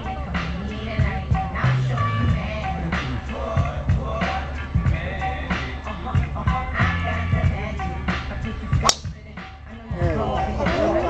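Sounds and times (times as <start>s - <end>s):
background music with a beat: 0.0s - 11.0s
golf ball struck crack: 8.8s - 9.2s.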